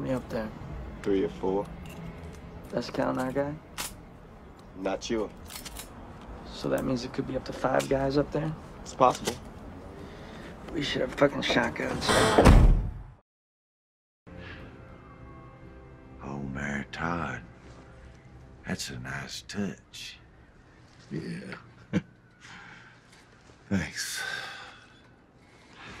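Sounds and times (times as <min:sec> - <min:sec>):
faint breath: 0:09.9 - 0:10.6, 0:22.4 - 0:23.2.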